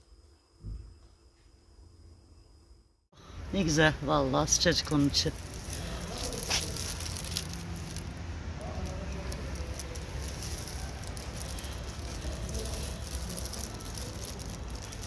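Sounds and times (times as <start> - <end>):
low rumble of city street: 3.2 - 15.0
faint crackles and clicks: 5.2 - 15.0.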